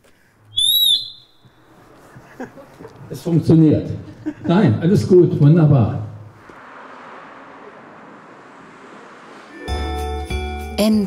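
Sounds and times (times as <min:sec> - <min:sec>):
high feedback whistle: 0:00.5 - 0:01.7.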